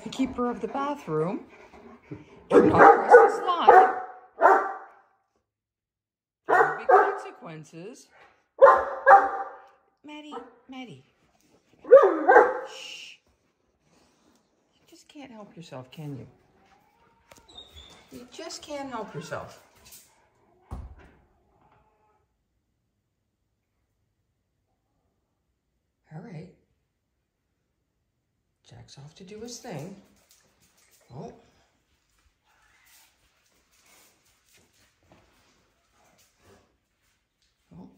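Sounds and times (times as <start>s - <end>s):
large dog barking: 2.5s - 5.0s, 6.5s - 7.4s, 8.6s - 9.7s, 11.8s - 12.8s.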